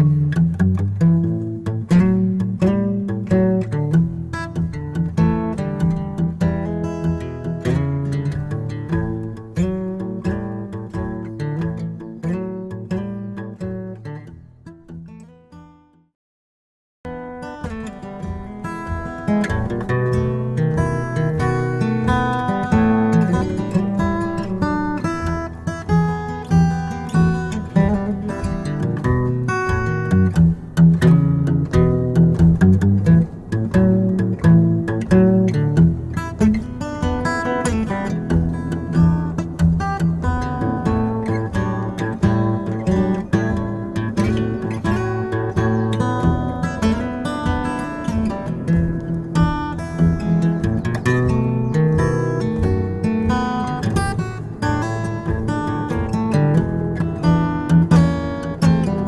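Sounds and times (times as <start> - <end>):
acoustic guitar blues: 0.0 - 16.1, 17.1 - 59.0.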